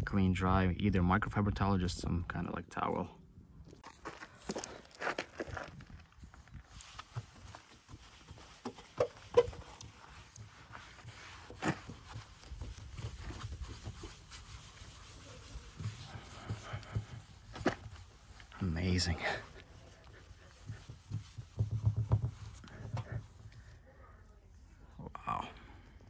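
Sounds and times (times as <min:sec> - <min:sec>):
towel rubbing car paint: 0:06.7 - 0:23.8.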